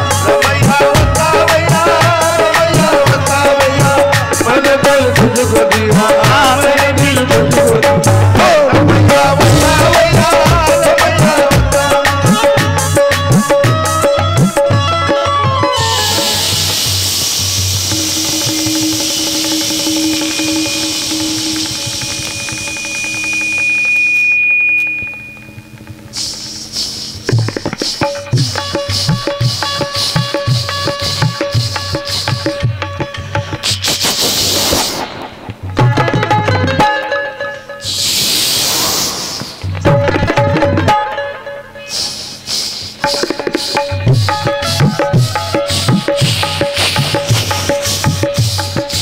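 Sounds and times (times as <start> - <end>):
person singing: 0.0 - 14.0
drumming: 0.0 - 37.2, 39.5 - 41.3, 42.9 - 49.0
harmonium: 0.0 - 49.0
steady hissing: 15.9 - 35.8, 37.8 - 39.8, 41.8 - 49.0.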